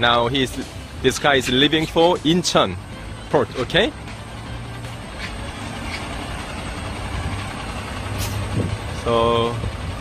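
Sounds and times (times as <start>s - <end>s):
truck diesel engine running: 0.0s - 10.0s
short air hisses: 8.2s - 8.6s.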